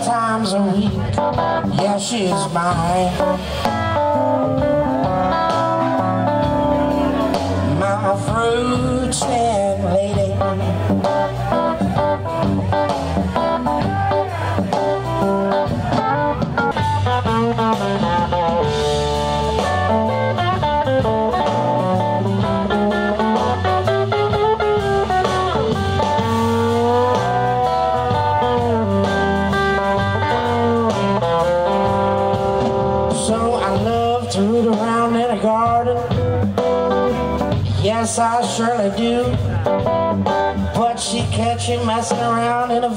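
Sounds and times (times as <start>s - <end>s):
bass guitar: 0.0s - 42.9s
drums: 0.0s - 42.9s
electric guitar lead: 0.0s - 42.9s.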